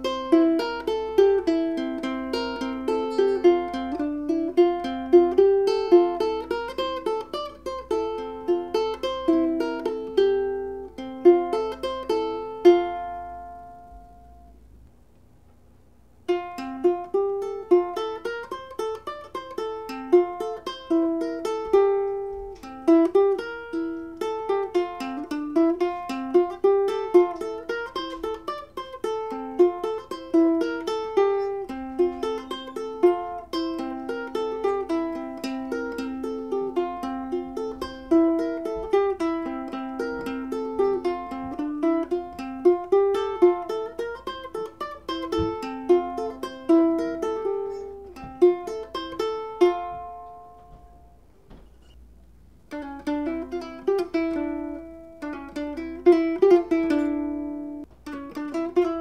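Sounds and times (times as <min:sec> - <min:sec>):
ukulele fingerstyle melody: 0:00.0 - 0:14.8, 0:16.2 - 0:59.0.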